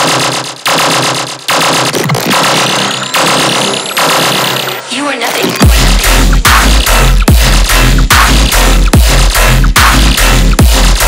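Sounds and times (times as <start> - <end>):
distorted synth bass hits: 0.0 - 4.8, 5.5 - 11.0.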